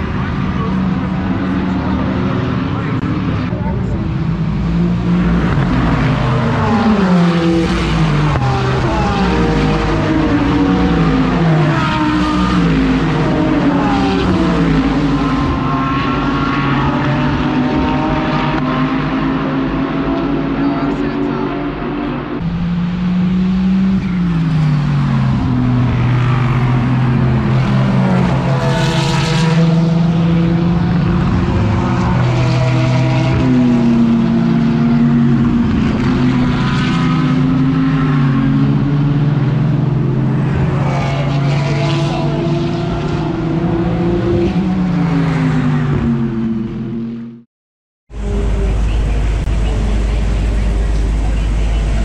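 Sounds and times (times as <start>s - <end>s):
race car engines passing: 0.0s - 47.4s, 48.1s - 52.0s.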